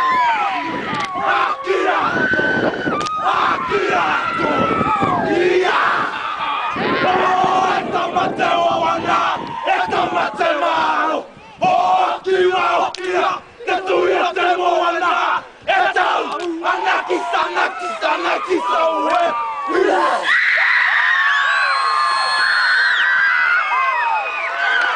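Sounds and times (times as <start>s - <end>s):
men chanting and shouting: 3.2s - 20.3s.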